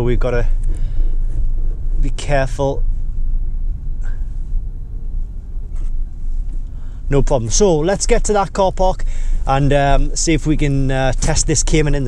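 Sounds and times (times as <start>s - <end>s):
car engine rumble: 0.0s - 12.0s.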